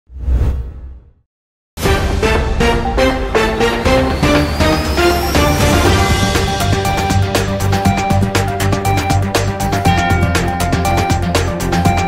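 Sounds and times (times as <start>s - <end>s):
music: 1.8s - 12.0s.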